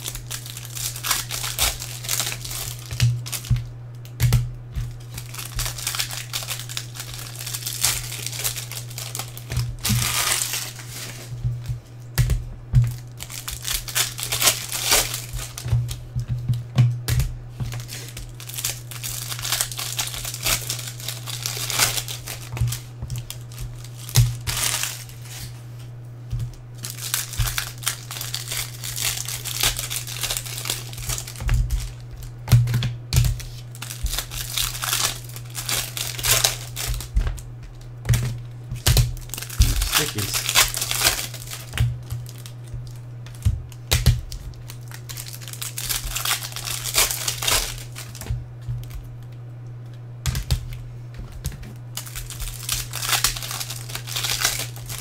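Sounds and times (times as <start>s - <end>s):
plastic sleeves crinkling: 0.0s - 55.0s.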